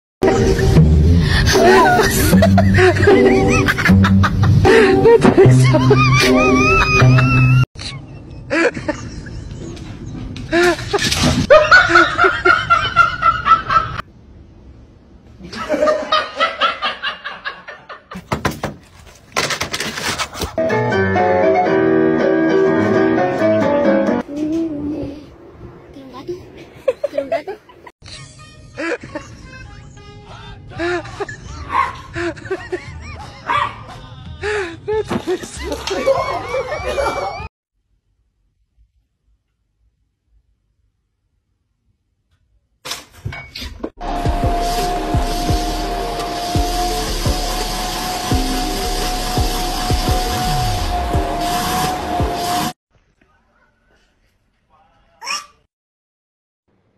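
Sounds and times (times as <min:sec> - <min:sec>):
music: 0:00.2 - 0:07.6, 0:20.6 - 0:24.2, 0:44.0 - 0:52.7
person laughing in short bursts: 0:00.3 - 0:09.4
small dog barking: 0:31.7 - 0:32.1, 0:33.5 - 0:33.9.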